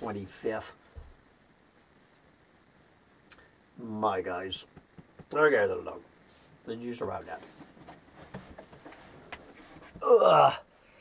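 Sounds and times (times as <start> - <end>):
faint rustling: 0.0 - 10.0.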